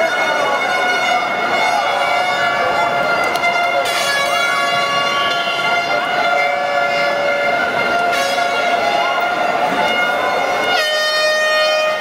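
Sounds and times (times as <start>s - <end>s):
crowd noise: 0.0s - 12.0s
horns sounding: 0.0s - 12.0s.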